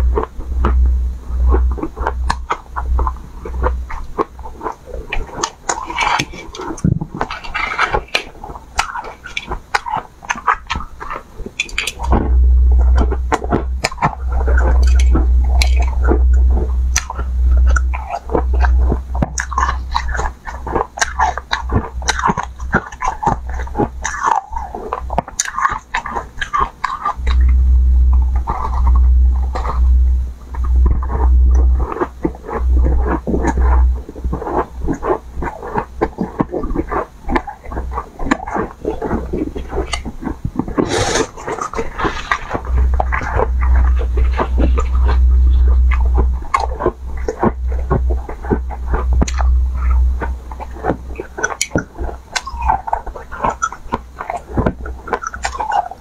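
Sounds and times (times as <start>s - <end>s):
chewing crunchy ice: 0.0s - 56.0s.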